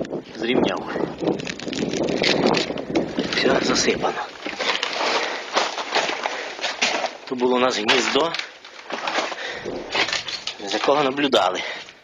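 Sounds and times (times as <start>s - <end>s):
wind on microphone: 0.0s - 4.6s, 9.5s - 10.5s.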